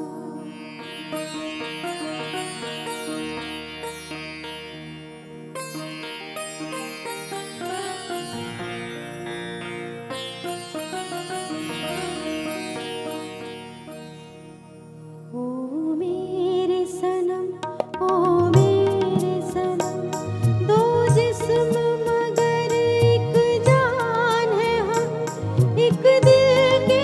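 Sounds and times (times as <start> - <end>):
plucked string melody: 0.0 - 15.0, 17.0 - 27.0.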